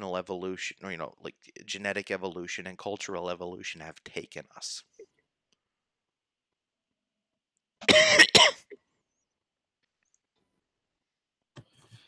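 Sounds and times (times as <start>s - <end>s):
man clearing his throat: 7.8s - 8.6s.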